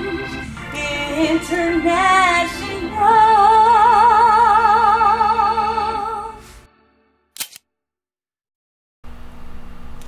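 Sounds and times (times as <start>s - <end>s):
sharp double click: 7.4s - 7.6s.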